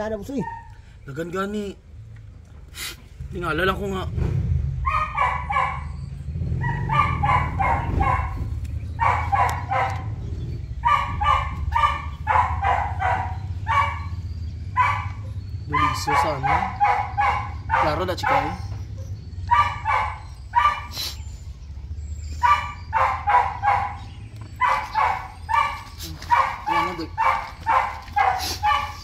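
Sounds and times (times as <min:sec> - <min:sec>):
dog barking: 0:00.2 - 0:00.8, 0:04.8 - 0:21.2, 0:22.3 - 0:29.0.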